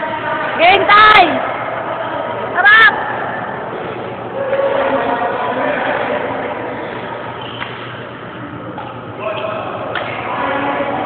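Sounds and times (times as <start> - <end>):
busy indoor hall din: 0.0 - 11.0.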